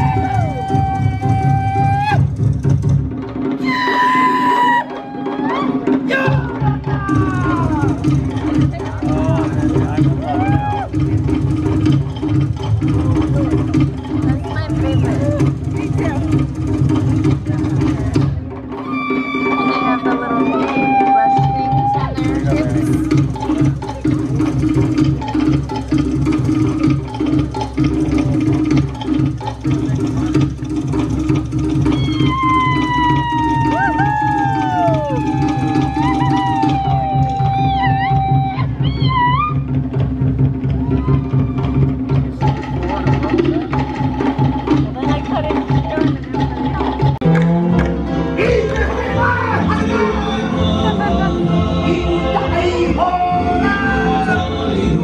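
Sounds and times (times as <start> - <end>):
fast drumming: 0.0 - 55.0.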